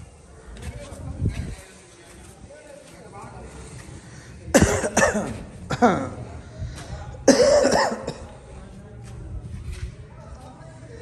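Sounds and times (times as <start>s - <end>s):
person coughing harshly: 4.5s - 6.2s, 7.2s - 8.3s.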